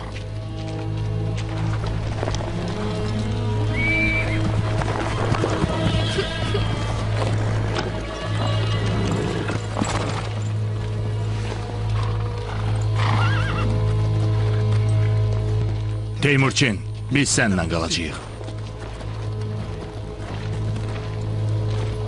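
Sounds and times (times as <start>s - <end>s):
hooves clip-clopping: 0.0s - 22.0s
orchestral music with low drone: 0.0s - 22.0s
horses whinnying: 3.5s - 10.5s, 11.4s - 14.8s.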